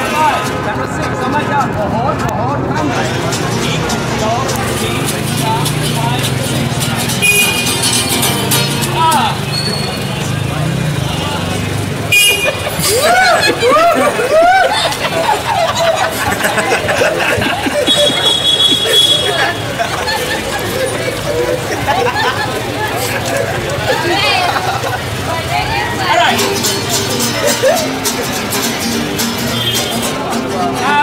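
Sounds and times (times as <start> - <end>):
street traffic rumble: 0.0 - 31.0
vehicle horn toot: 7.2 - 8.0, 12.1 - 12.7, 17.8 - 19.8, 29.5 - 30.0.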